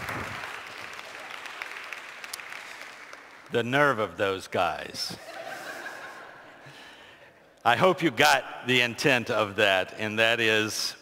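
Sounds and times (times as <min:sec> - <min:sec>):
congregation applauding: 0:00.0 - 0:04.0.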